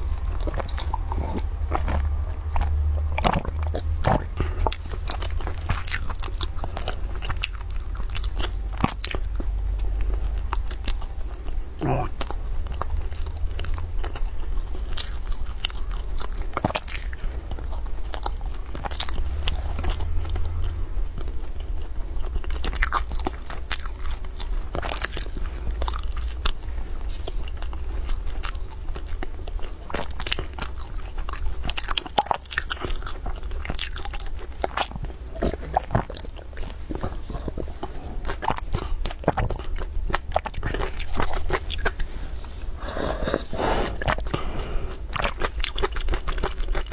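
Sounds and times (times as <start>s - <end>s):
crunching flaky pastry: 0.0s - 46.9s
low steady hum: 0.0s - 46.9s
person gulping and swallowing: 11.8s - 12.3s.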